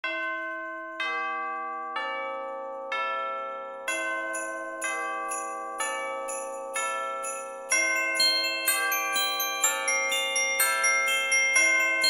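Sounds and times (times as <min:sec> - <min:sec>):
bell-like chords ringing: 0:00.1 - 0:12.0.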